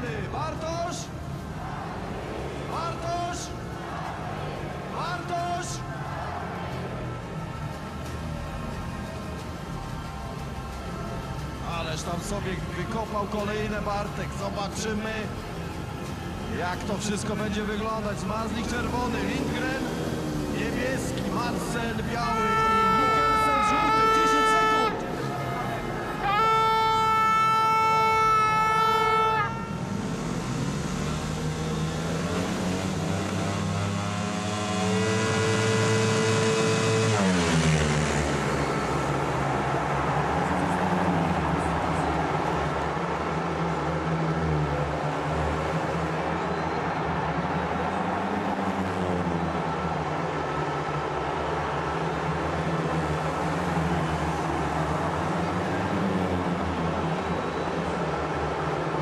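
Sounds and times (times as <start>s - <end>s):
motorbike engines revving: 0.0s - 59.0s
motorbikes racing: 12.4s - 26.3s, 29.5s - 59.0s
air horn blasts: 22.1s - 30.1s, 34.7s - 38.0s.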